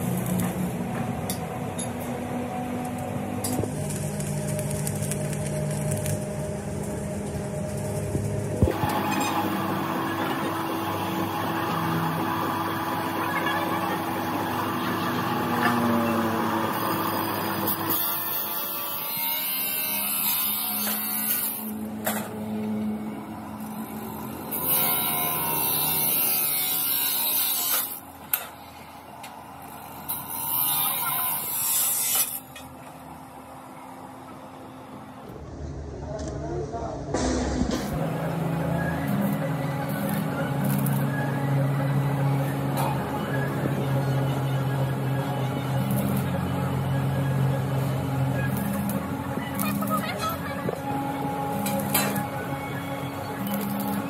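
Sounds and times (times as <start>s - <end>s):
chop saw cutting steel: 15.3s - 22.4s, 23.6s - 28.6s, 29.8s - 32.7s, 51.5s - 52.4s.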